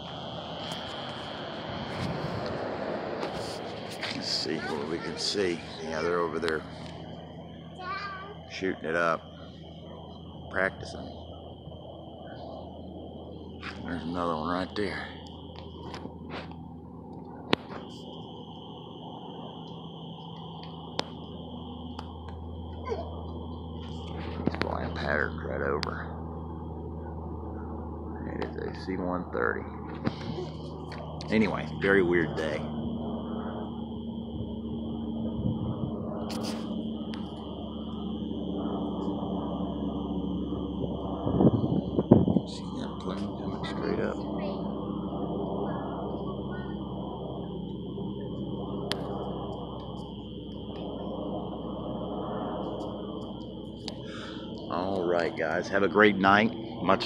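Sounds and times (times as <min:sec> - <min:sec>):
high insect trill: 0:00.0 - 0:57.0
turboprop plane droning overhead: 0:00.0 - 0:57.0.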